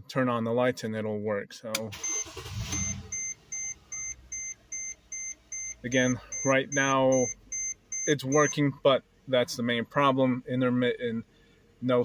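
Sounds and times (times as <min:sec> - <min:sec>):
car engine starting and idling: 0:01.7 - 0:12.0
dashboard warning chime beeps: 0:02.0 - 0:08.7.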